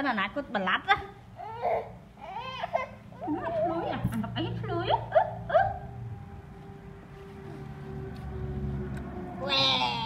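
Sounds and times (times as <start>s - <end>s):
baby whimpering cries: 1.3s - 3.4s.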